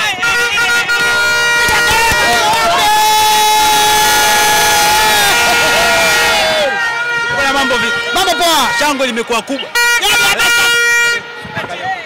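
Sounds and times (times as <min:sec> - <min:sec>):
horn long steady note: 0:00.0 - 0:11.5
other held horn notes: 0:00.0 - 0:11.5
crowd noise: 0:00.0 - 0:12.0.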